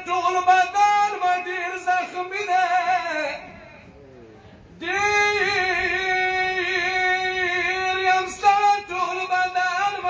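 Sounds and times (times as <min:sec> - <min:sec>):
man singing unaccompanied: 0:00.0 - 0:03.6, 0:04.8 - 0:10.0.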